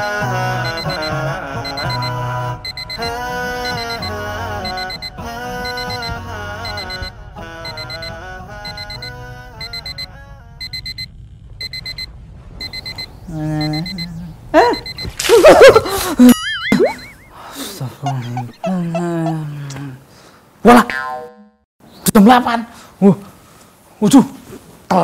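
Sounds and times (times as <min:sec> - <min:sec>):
background music: 0:00.0 - 0:11.1
digital alarm clock beeping: 0:00.6 - 0:14.1, 0:14.7 - 0:15.1, 0:16.8 - 0:17.3
man groaning: 0:18.0 - 0:20.0.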